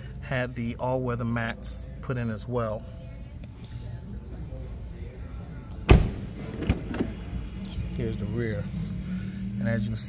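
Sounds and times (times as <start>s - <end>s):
car door thump: 5.9s - 7.1s.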